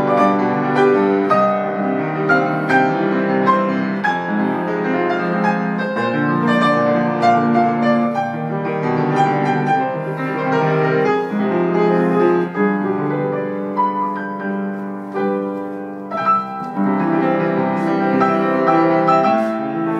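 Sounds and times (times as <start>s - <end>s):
solo grand piano: 0.0s - 19.9s.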